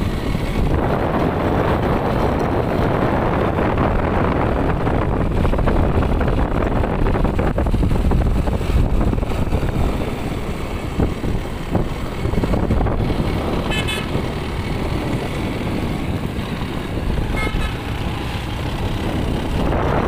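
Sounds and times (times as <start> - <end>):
motorcycle engine rumble: 0.0 - 20.0
wind rush: 0.0 - 20.0
short horn toots: 13.7 - 14.2, 17.3 - 17.9.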